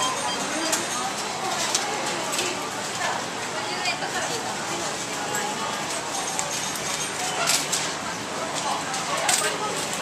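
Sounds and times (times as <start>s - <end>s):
hubbub of voices: 0.0s - 10.0s.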